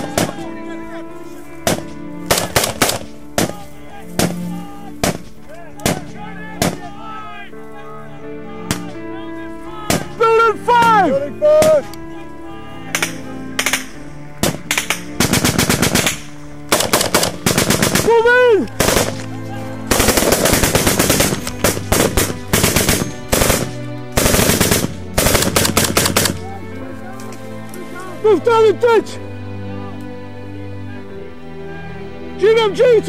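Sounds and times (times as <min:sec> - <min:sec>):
rifle shots: 0:01.6 - 0:03.6, 0:13.0 - 0:18.1, 0:18.8 - 0:19.2, 0:19.9 - 0:26.4
machine gun bursts: 0:19.9 - 0:26.4.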